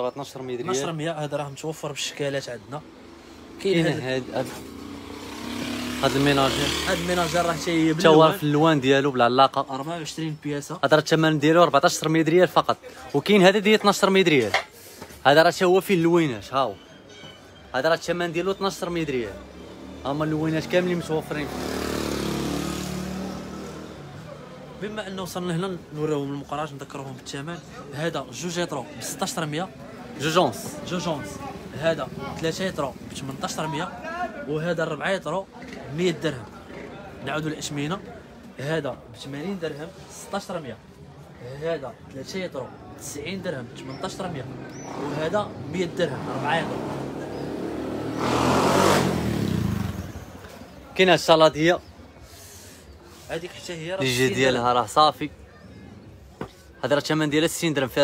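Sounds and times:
vehicle engine passing by: 3.0 - 8.2, 19.4 - 24.7, 44.1 - 50.5.

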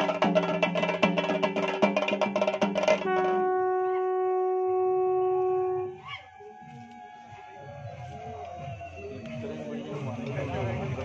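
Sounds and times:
horn blowing a long note: 3.0 - 7.7
crowd murmur: 3.6 - 11.0.

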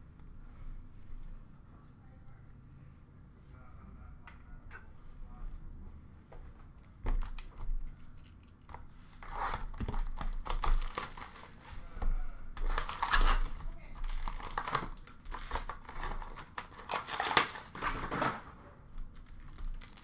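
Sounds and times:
foil wrapper crinkling and tearing: 7.2 - 11.7, 12.6 - 18.0, 19.1 - 20.0.

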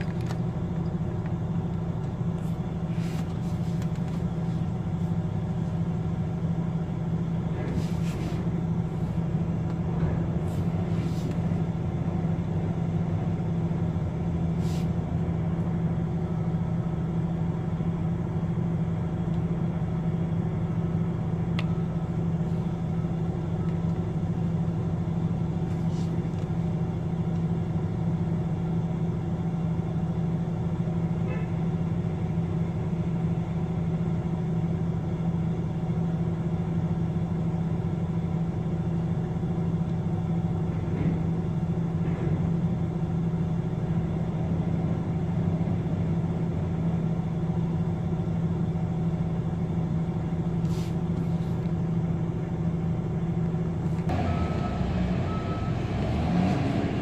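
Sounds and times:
heavy diesel machinery drone: 0.0 - 57.0.

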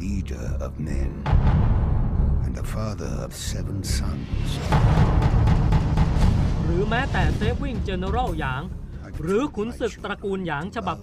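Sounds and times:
booming percussion: 1.1 - 9.4
heavy rumble: 1.2 - 8.8
man's voice: 2.5 - 5.1.

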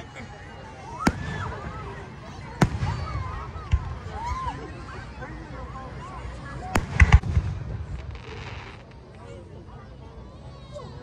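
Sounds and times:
firework crack: 1.0 - 4.3, 6.6 - 9.3
firework deep booms: 2.6 - 4.0, 6.7 - 8.8.

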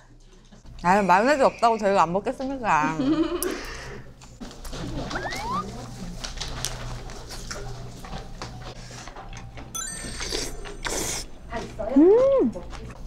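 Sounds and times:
rising chime sound effect: 9.8 - 11.1
chewing: 10.3 - 13.0.

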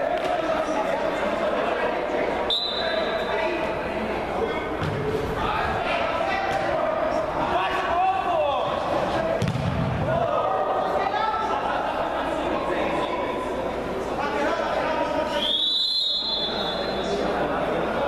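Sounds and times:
players calling out in echoing hall: 0.0 - 18.0
football thudding when kicked: 9.4 - 10.0.

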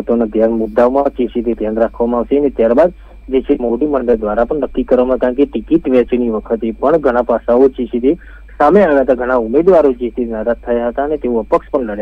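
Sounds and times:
low steady hum: 0.0 - 12.0
reporter voice-over talking: 0.0 - 12.0.

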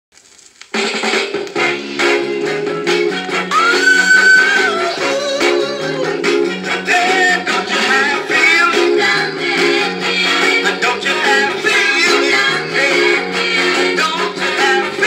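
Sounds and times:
soul record playing: 0.1 - 15.0.

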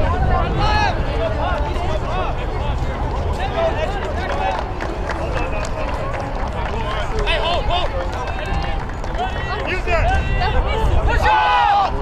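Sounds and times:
people shouting: 9.2 - 12.0.

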